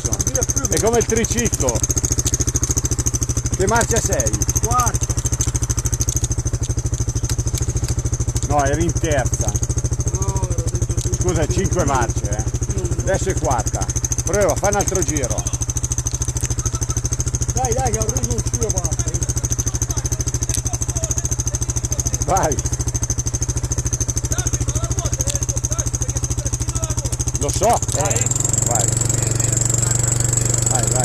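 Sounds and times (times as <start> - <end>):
quad bike engine idling: 0.0 - 31.0.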